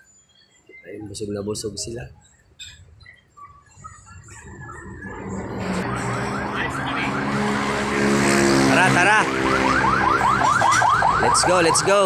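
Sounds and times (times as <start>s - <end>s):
motor vehicle approaching: 3.7s - 12.0s
rising electronic whoop siren: 3.8s - 12.0s.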